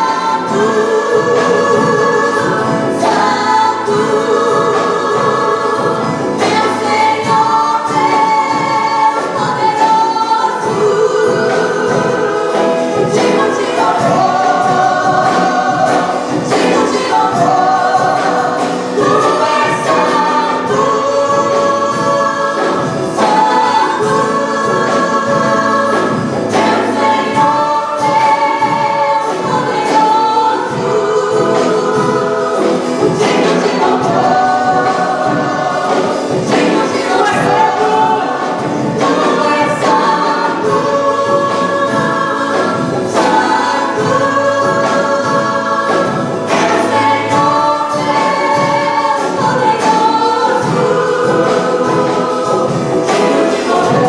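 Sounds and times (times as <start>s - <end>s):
gospel band playing: 0.0s - 54.0s
women singing together: 0.0s - 54.0s.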